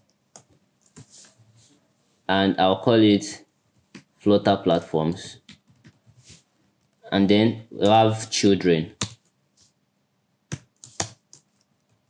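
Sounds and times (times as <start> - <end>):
computer keyboard keystrokes: 10.5 - 12.0.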